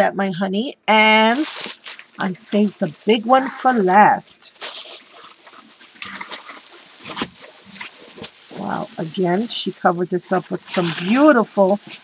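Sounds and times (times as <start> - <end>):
tissue paper crinkling: 1.2 - 12.0.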